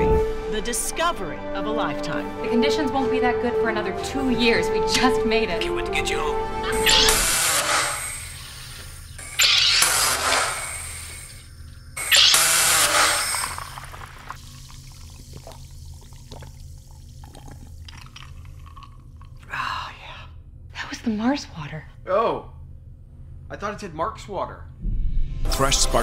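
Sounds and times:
soda maker gas hissing: 0:06.8 - 0:18.1.

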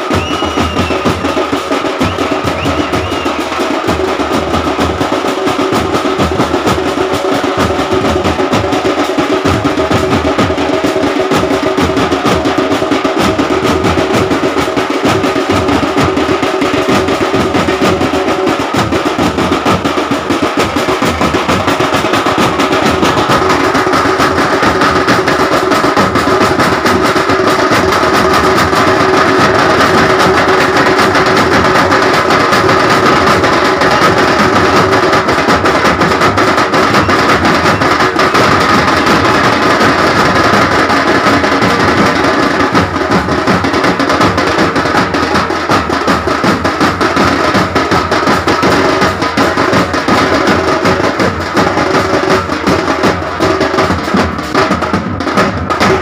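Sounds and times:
loud fast drumming: 0:00.0 - 0:56.0.

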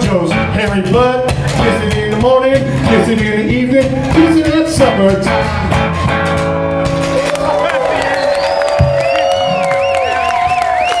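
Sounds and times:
crowd cheering and clapping: 0:05.7 - 0:11.0.

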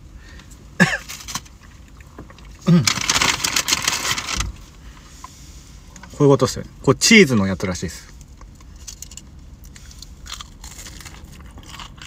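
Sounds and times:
packaging crinkling: 0:02.7 - 0:04.5.

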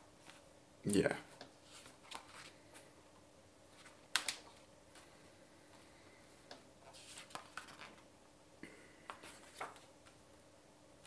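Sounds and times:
paper rustling: 0:01.6 - 0:02.9, 0:06.8 - 0:08.1, 0:09.1 - 0:10.2.

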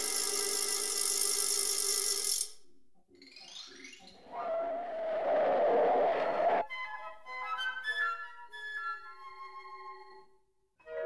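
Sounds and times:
falling swoops: 0:04.2 - 0:06.6
rising whoosh: 0:04.2 - 0:06.6.

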